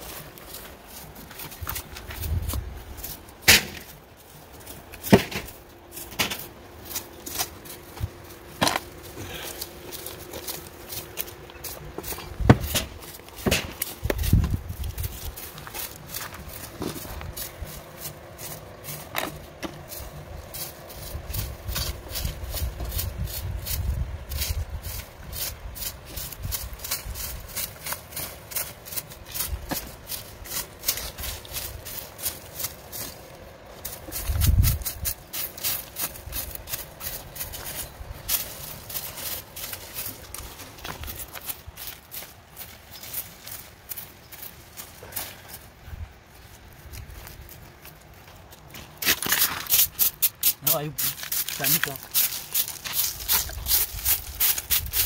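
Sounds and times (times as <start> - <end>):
low rumbles: 0.0 - 43.0
hoes chopping and scraping soil: 0.0 - 45.8, 46.6 - 55.0.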